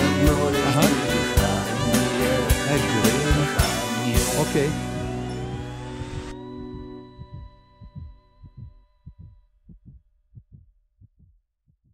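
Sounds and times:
held song notes: 0:00.0 - 0:08.6
heartbeat thumps: 0:06.0 - 0:11.9.

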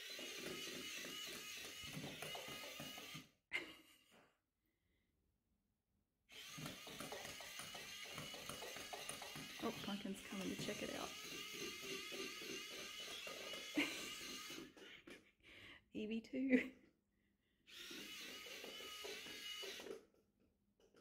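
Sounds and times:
toy electric motor whining: 0:00.0 - 0:03.4, 0:06.3 - 0:14.8, 0:17.7 - 0:20.2.

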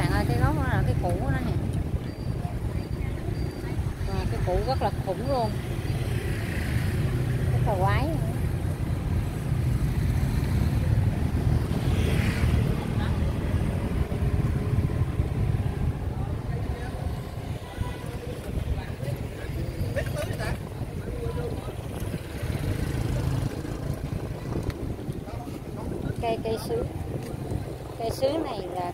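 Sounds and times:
street traffic rumble: 0:00.0 - 0:28.9.

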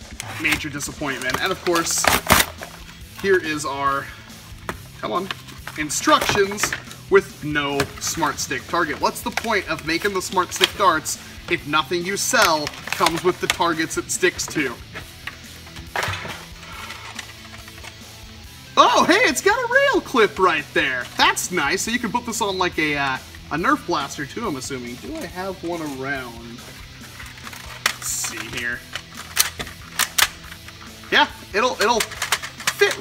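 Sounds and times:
cardboard packaging rustling: 0:00.0 - 0:18.0, 0:25.0 - 0:31.1
quiet background music: 0:00.0 - 0:33.0
hard plastic clicks: 0:27.2 - 0:30.8, 0:31.8 - 0:33.0.

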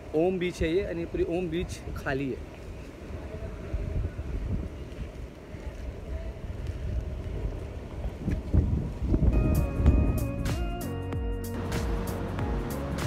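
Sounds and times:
wind on microphone: 0:00.8 - 0:10.7.

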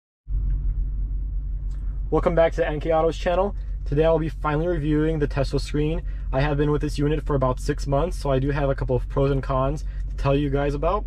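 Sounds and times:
car engine idling: 0:00.3 - 0:11.0.

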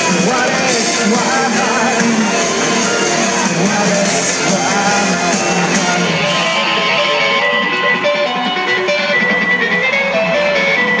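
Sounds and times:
amplified electric guitars: 0:00.0 - 0:11.0
rock band playing live: 0:00.0 - 0:11.0.

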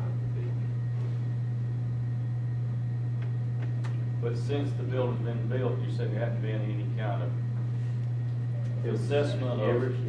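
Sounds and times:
low room tone hum: 0:00.0 - 0:10.0.

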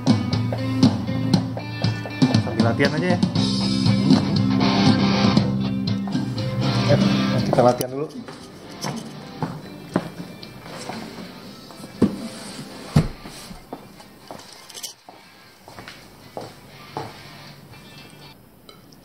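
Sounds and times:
faint background music: 0:00.0 - 0:18.4.

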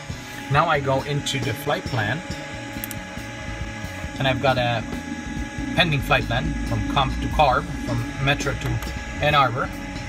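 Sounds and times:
low electronic hum: 0:00.0 - 0:10.0.

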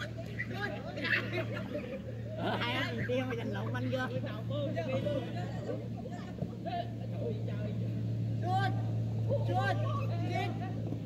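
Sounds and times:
steady low hum: 0:00.0 - 0:11.0
distant shouted calls: 0:04.6 - 0:11.0.

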